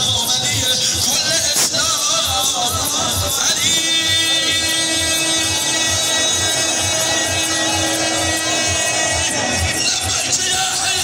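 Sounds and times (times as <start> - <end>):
steady deep beat: 1.9 - 11.0
amplified mourning chant: 2.1 - 11.0.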